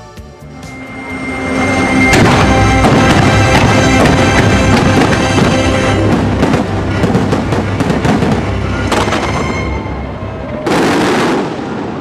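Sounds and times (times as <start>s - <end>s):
music playing: 0.0s - 11.3s
fireworks bursting: 1.0s - 12.0s.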